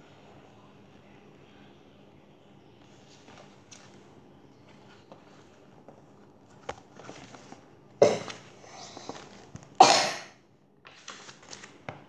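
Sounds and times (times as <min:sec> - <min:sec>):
child coughing: 0:08.0 - 0:08.4, 0:09.8 - 0:10.4.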